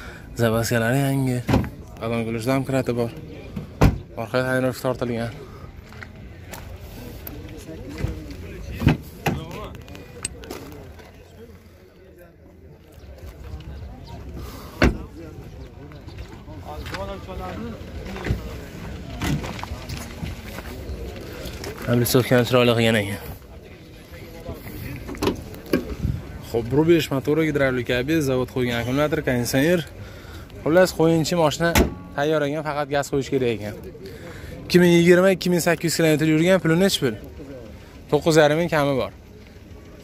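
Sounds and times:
crowd chatter: 0.0s - 40.0s.

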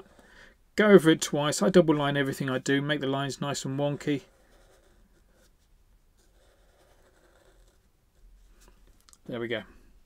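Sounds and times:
marker scratching on paper: 4.0s - 7.8s.

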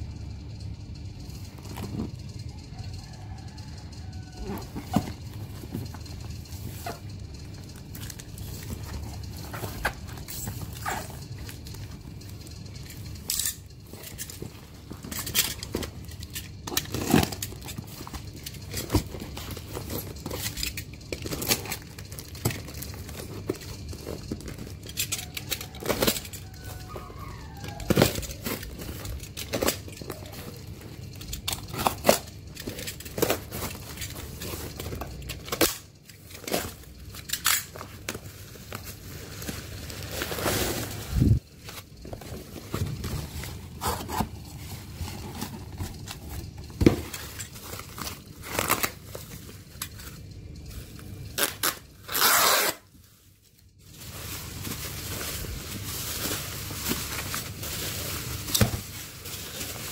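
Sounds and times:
plastic film crinkling: 2.7s - 59.9s.

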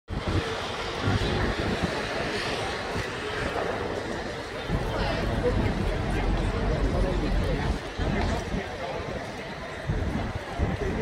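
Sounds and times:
faint voices of people: 0.1s - 11.0s.

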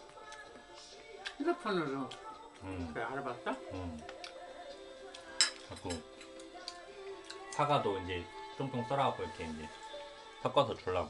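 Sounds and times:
chopsticks and tableware clinking: 5.4s - 6.4s.

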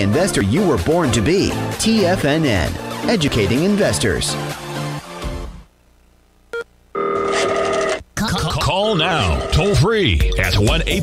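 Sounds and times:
telephone ringing tone: 6.9s - 8.0s, 8.9s - 9.8s.

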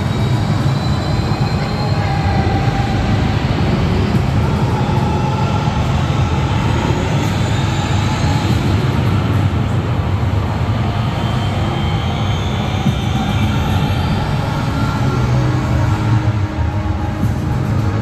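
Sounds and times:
roller coaster rumbling on track: 0.0s - 18.0s.

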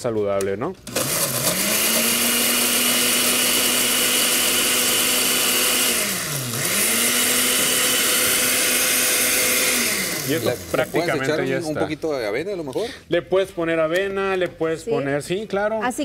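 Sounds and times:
blender running at high speed: 0.9s - 11.8s.

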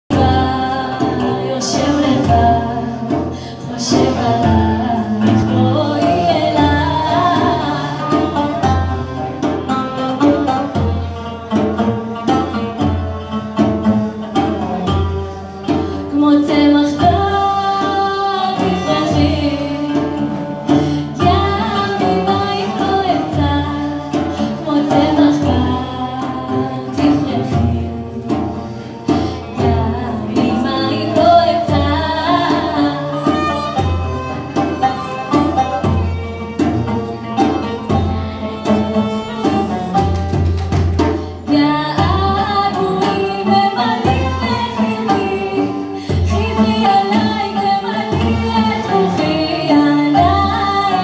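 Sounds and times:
woman singing: 0.0s - 12.9s, 13.6s - 51.0s
violin: 0.0s - 51.0s
frame drum beat: 0.1s - 51.0s
oud: 0.1s - 51.0s.

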